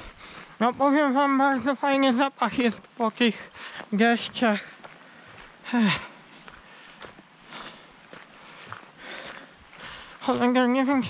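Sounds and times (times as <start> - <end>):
footsteps crunching on gravel: 0.6 - 11.0.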